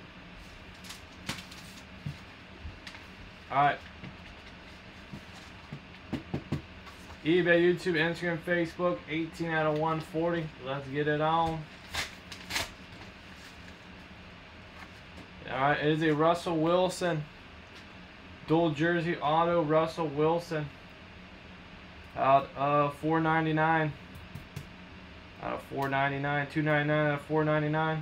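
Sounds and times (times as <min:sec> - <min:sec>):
low room hum: 0:00.0 - 0:28.0
paper envelope rustling: 0:00.4 - 0:03.1
paper mailer ripping: 0:11.8 - 0:12.9.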